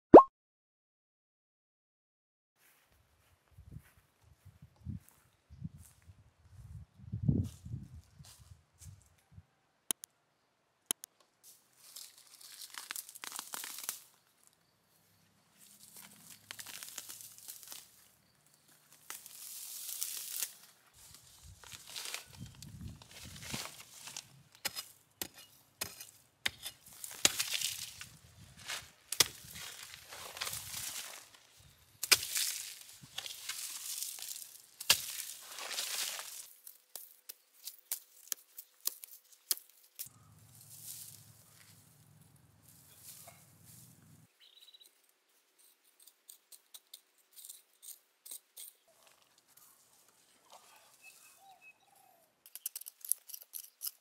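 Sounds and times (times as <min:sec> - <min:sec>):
rustling soil: 0:11.4 - 0:14.2, 0:15.6 - 0:44.3
plastic crinkling and tearing: 0:11.9 - 0:14.1
hoe chopping dry soil: 0:23.2 - 0:31.4, 0:32.0 - 0:37.0.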